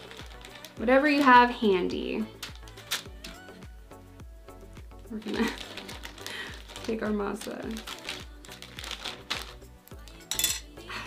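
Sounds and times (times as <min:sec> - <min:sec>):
utensils clattering: 0:10.2 - 0:10.7
spoon clinking against plate: 0:10.3 - 0:10.7.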